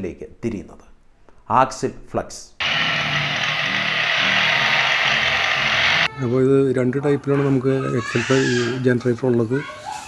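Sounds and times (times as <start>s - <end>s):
wind turbine whirring hiss: 2.6s - 6.1s.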